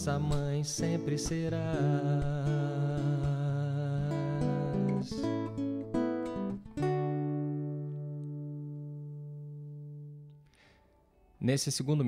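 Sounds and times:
acoustic guitar chord ringing: 0.0s - 11.4s.

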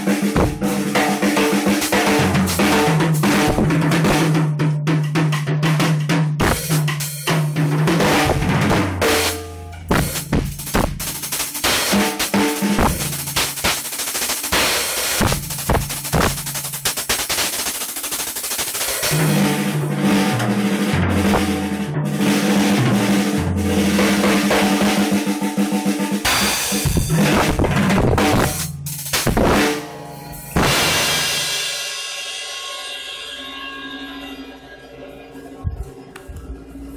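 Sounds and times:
fast drum kit solo: 0.0s - 33.8s
cymbals ringing: 6.5s - 24.8s, 28.4s - 36.1s.

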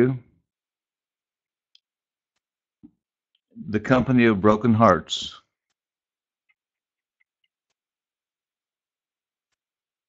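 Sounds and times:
man's voice: 0.0s - 0.2s, 3.6s - 5.4s.

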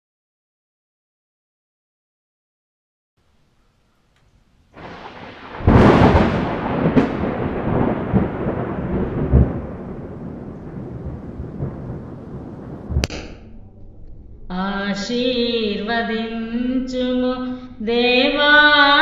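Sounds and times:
thunder rumble and crack: 4.7s - 19.0s.

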